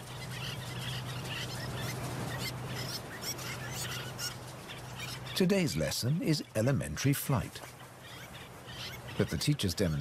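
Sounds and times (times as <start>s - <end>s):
low steady hum: 0.0s - 10.0s
terns calling: 0.0s - 10.0s.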